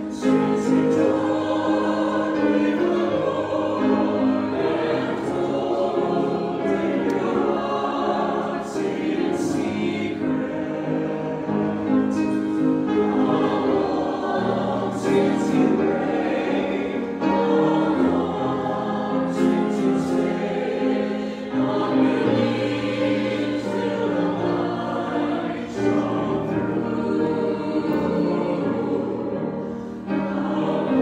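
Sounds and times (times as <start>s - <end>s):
mixed choir singing: 0.0s - 31.0s.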